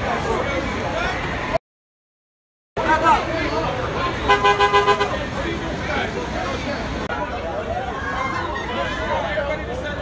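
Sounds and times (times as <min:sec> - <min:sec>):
vehicle horn short toots: 0:04.3 - 0:05.2.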